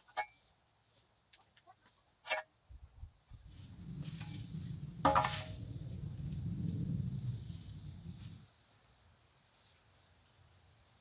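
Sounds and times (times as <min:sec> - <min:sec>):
shovel scraping soil: 0:04.0 - 0:05.6.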